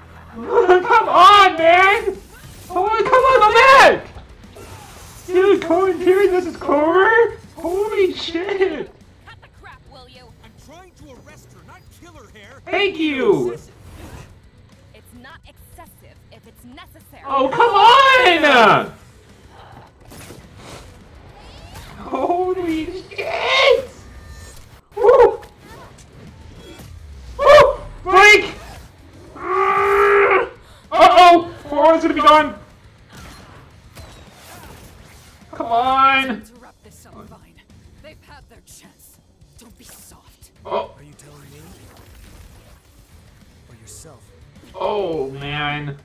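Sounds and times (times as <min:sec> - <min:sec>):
character crying out: 0:00.4 - 0:08.9, 0:12.7 - 0:13.6, 0:17.2 - 0:18.9, 0:21.8 - 0:26.0, 0:27.4 - 0:32.6
person exclaiming: 0:00.4 - 0:08.9, 0:12.6 - 0:13.6, 0:17.2 - 0:19.0, 0:22.0 - 0:24.0, 0:24.9 - 0:25.4, 0:27.4 - 0:32.6, 0:35.5 - 0:36.4, 0:40.7 - 0:41.0, 0:44.8 - 0:46.0
high cry: 0:17.3 - 0:18.9, 0:22.0 - 0:24.1, 0:24.9 - 0:25.8, 0:27.4 - 0:28.6, 0:29.2 - 0:32.6
mechanical sound effects: 0:20.0 - 0:29.3.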